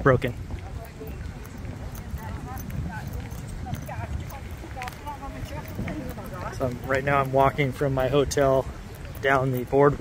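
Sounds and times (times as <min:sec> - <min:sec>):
faint chatter of passers-by: 0:00.0 - 0:10.0
wind rumble on microphone: 0:00.0 - 0:10.0
footsteps walking: 0:00.3 - 0:10.0.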